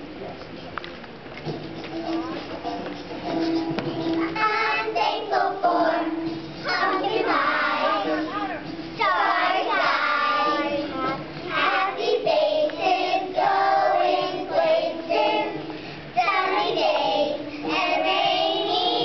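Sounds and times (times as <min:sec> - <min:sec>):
young children singing: 0:04.0 - 0:19.0.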